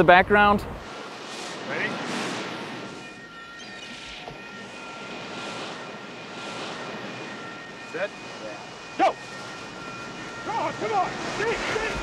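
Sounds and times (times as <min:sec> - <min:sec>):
ocean surf washing onto beach: 0:00.4 - 0:12.0.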